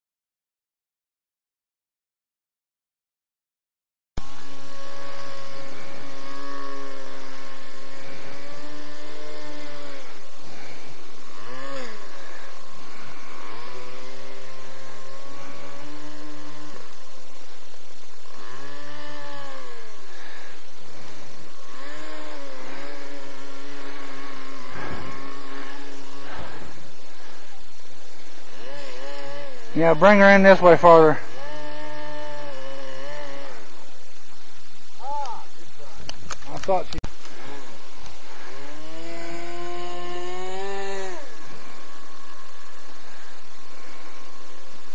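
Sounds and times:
airboat motor and propeller revving: 0:28.4 - 0:33.7.

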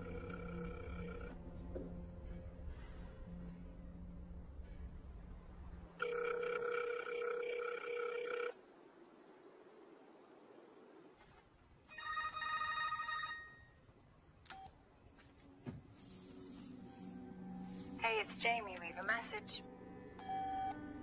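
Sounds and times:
telephone ringing tone: 0:00.0 - 0:01.4, 0:06.0 - 0:08.6, 0:11.9 - 0:13.8.

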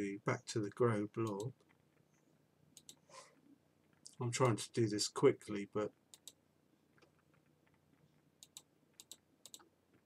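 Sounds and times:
computer mouse clicks: 0:02.8 - 0:03.1, 0:06.1 - 0:06.4, 0:07.0 - 0:10.0.

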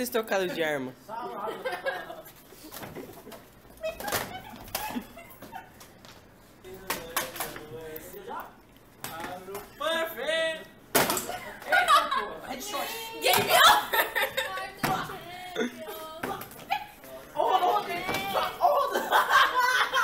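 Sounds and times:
young people talking: 0:00.0 - 0:05.8, 0:06.6 - 0:20.0
laughter: 0:01.3 - 0:05.8, 0:11.3 - 0:12.5, 0:13.4 - 0:14.8, 0:17.4 - 0:20.0.

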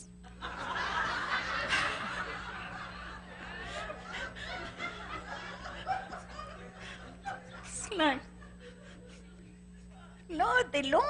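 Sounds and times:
roomful of people laughing: 0:00.2 - 0:10.3.

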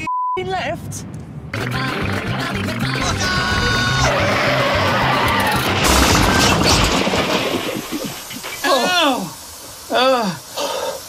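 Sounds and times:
music: 0:01.6 - 0:05.2
tyres squealing: 0:03.1 - 0:07.0
car crash impact: 0:05.4 - 0:08.6.

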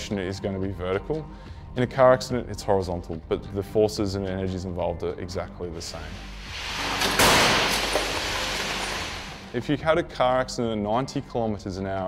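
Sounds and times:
car crash: 0:06.4 - 0:09.6
crumpling metal and debris: 0:06.4 - 0:09.6.

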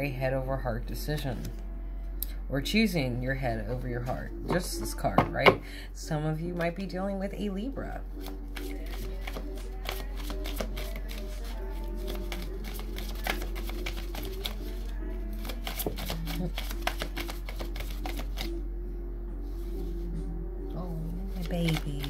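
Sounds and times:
cards being shuffled: 0:08.1 - 0:18.5, 0:21.2 - 0:22.0.

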